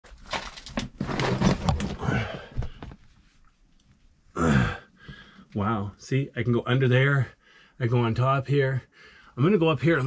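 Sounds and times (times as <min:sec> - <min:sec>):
person straining vocally: 0:01.9 - 0:02.7, 0:04.4 - 0:04.9.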